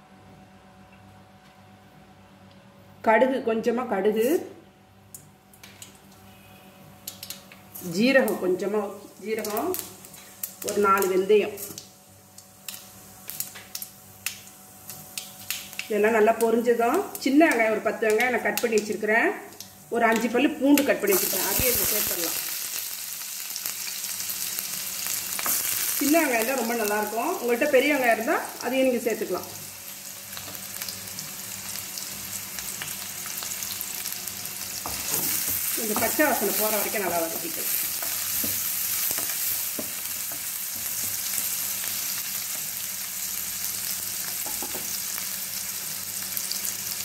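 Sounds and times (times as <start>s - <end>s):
faint steady hum: 0.0s - 47.0s
seeds crackling in hot oil: 5.1s - 47.0s.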